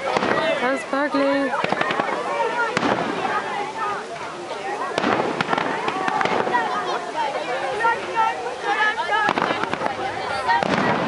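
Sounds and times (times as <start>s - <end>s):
crackling firework reports: 0.0s - 11.0s
fireworks bursting: 0.0s - 11.0s.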